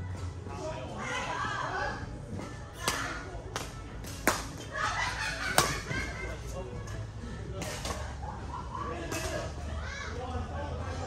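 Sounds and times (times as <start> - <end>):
racket striking shuttlecock: 5.5 - 5.9.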